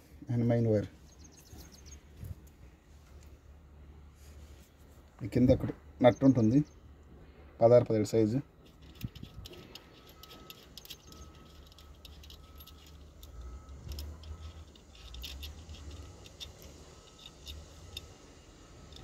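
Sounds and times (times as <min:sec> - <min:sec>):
metallic clicks of hand tools: 0:08.7 - 0:18.2, 0:18.8 - 0:19.0.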